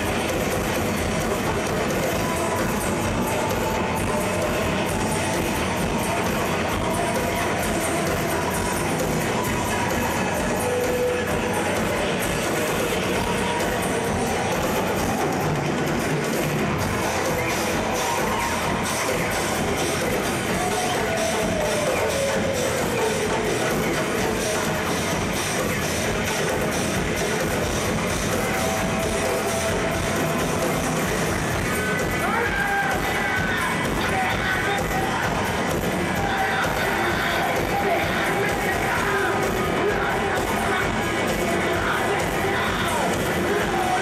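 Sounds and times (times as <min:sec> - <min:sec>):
drum kit and percussion: 0:00.0 - 0:44.0.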